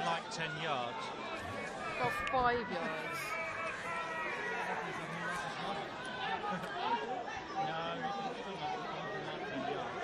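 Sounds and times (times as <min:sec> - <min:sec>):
overlapping chatter of people: 0:00.0 - 0:10.0.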